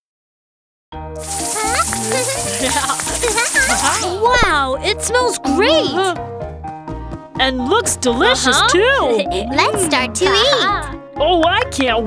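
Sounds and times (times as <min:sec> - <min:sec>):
bright background music: 0:01.0 - 0:12.0
food sizzling in frying pan: 0:01.2 - 0:04.2.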